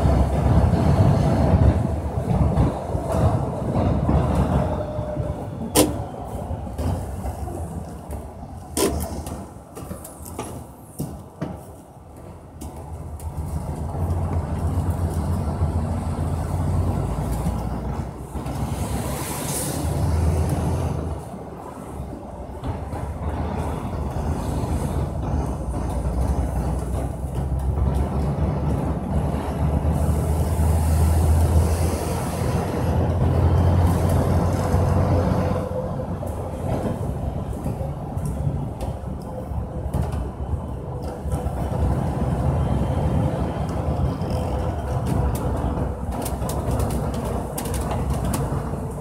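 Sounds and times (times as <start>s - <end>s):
road and wind noise: 0.0s - 49.0s
vehicle engine: 0.0s - 49.0s.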